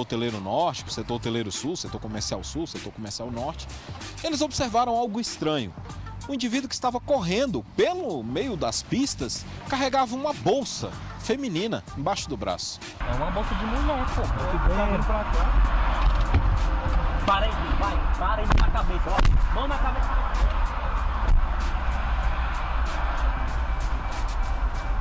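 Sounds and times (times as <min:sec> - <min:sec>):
music: 0:00.0 - 0:25.0
car road and engine rumble: 0:05.6 - 0:25.0
sharp knocks: 0:16.0 - 0:17.0.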